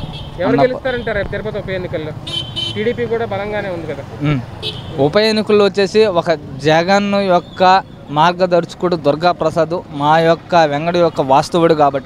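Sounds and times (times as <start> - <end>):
busy street traffic: 0.0 - 12.0
man talking: 0.4 - 12.0.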